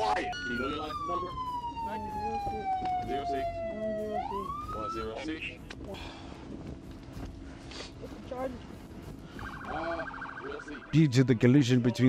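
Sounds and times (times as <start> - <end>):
police siren wailing: 0.0 - 5.6, 9.3 - 11.4
voices: 0.0 - 6.4, 9.4 - 12.0.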